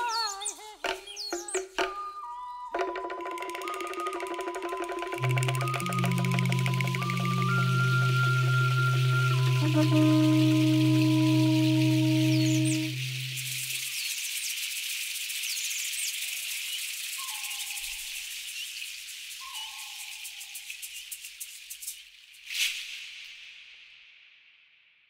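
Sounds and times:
faint bird chirps: 0.0 - 21.8
short falling calls: 2.8 - 13.9
insects chorus: 2.8 - 21.9
low musical drone: 5.1 - 13.9.

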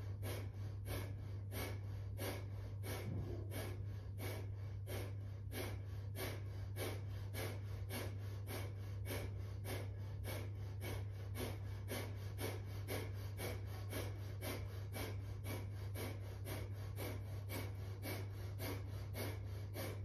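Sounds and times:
rapid forceful nasal exhalations: 0.0 - 20.0
steady low hum: 0.0 - 20.0.

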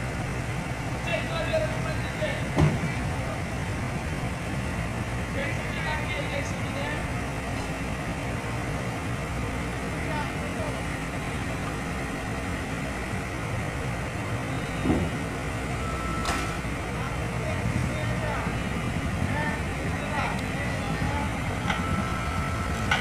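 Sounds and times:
diesel engine running: 0.0 - 23.0
people talking: 1.0 - 3.6, 5.2 - 11.8, 16.4 - 23.0.

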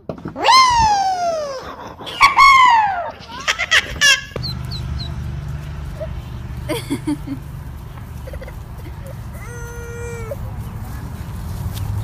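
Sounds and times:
low background hum: 0.8 - 11.5
ducklings peeping: 4.3 - 6.4
child calling: 9.3 - 10.4.

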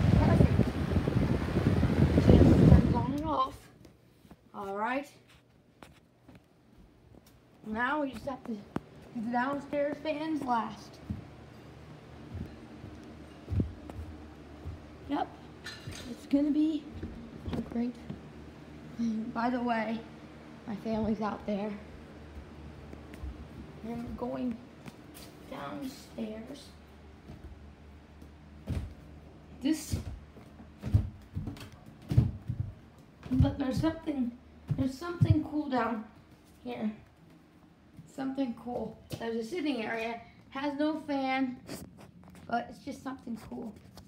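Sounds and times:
faint steady hum: 0.0 - 44.0
footsteps on carpeted stairs: 3.8 - 18.7, 20.8 - 39.4.

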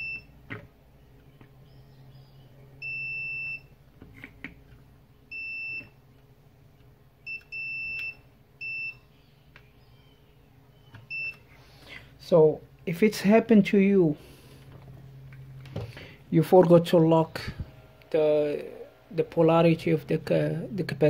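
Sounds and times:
multimeter continuity beeps: 0.0 - 0.4, 2.8 - 3.8, 5.3 - 6.0, 7.2 - 9.2, 9.8 - 11.5.

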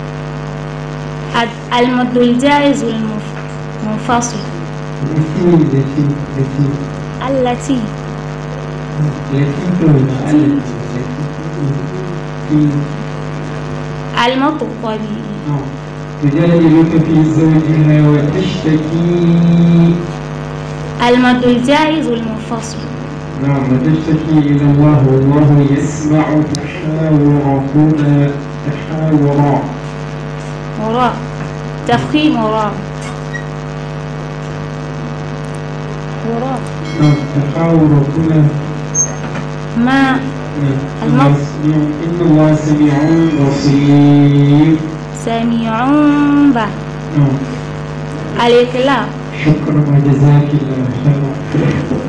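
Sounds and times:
electrical mains hum: 0.0 - 52.0.

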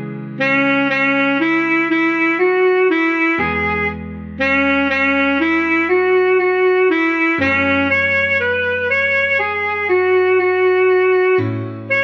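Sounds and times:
slow saxophone melody: 0.0 - 12.0
sustained low backing chords: 0.0 - 12.0.

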